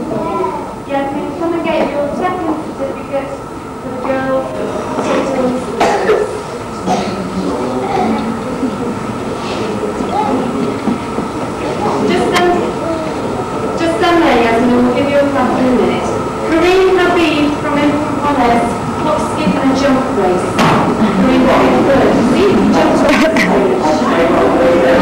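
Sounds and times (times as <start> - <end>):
murmur of voices: 0.0 - 25.0
steady high hum: 0.0 - 25.0.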